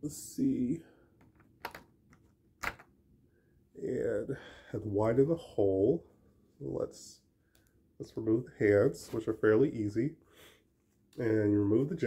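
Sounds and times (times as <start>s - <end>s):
plastic parts clicking: 1.2s - 1.9s.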